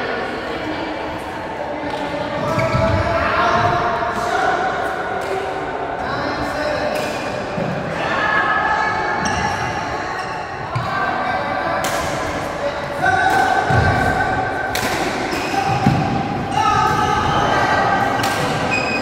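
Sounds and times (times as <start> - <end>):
rackets striking shuttlecock: 13.2 - 16.2, 18.2 - 18.7.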